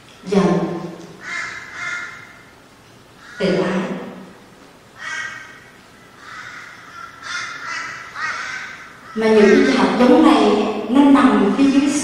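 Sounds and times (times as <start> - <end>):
woman speaking through microphone: 0.2 - 1.0, 3.4 - 4.2, 9.2 - 12.0.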